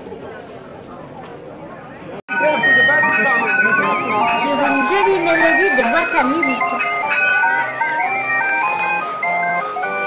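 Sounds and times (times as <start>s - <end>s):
street murmur: 0.0s - 10.0s
barrel organ playing: 2.3s - 10.0s.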